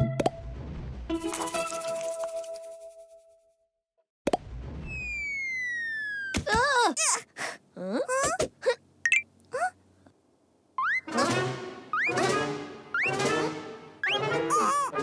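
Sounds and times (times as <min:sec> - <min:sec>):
cartoon squeaks pops and boings: 0:04.3 - 0:06.8, 0:10.8 - 0:15.0
long falling whistle: 0:04.8 - 0:06.4
brass cartoon music: 0:10.9 - 0:15.0.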